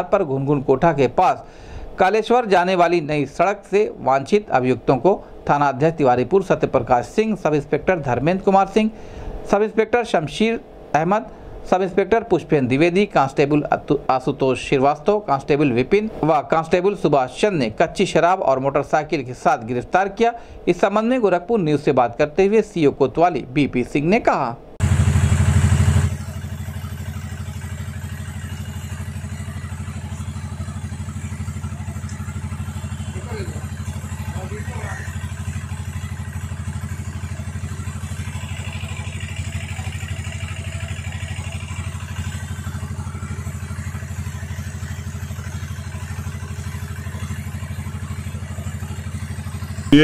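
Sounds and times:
low droning hum: 0:24.8 - 0:50.0.

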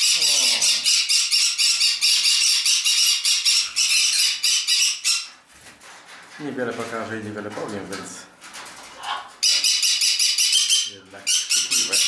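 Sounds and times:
parrots screeching: 0:00.0 - 0:05.3, 0:09.0 - 0:12.0.

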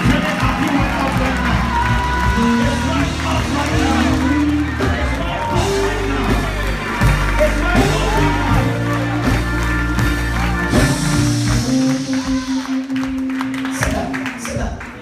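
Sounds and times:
congregation shouting praise: 0:00.0 - 0:13.9
church music with held chords: 0:00.0 - 0:14.4.

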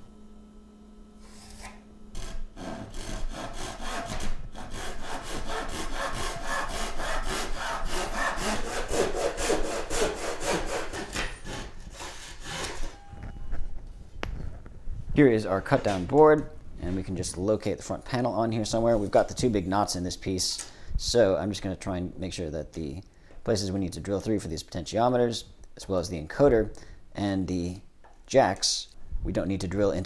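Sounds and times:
handsaw cutting wood: 0:01.2 - 0:12.9.

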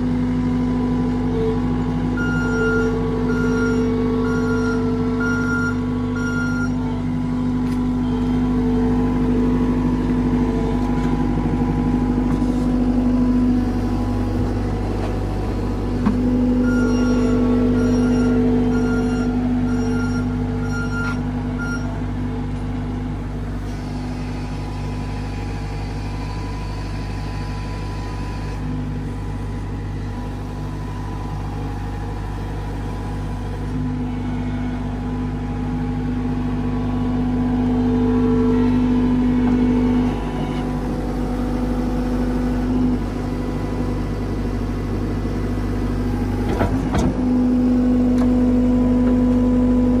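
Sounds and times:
diesel engine running: 0:00.0 - 0:50.0.

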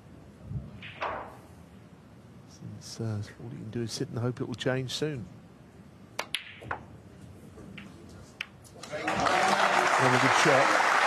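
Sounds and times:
snooker balls clicking: 0:06.2 - 0:06.9
audience applause: 0:08.8 - 0:11.0.

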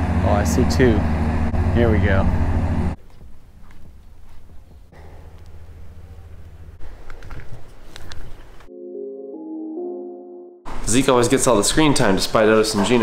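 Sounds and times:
soft synthesizer music: 0:08.7 - 0:10.7.

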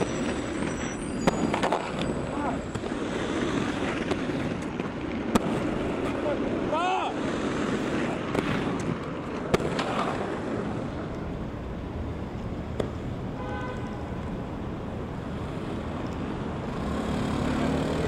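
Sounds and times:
warbling squeal: 0:00.0 - 0:03.3
skates clacking on ground: 0:00.0 - 0:11.2
skate wheels rolling on concrete: 0:00.0 - 0:18.0.

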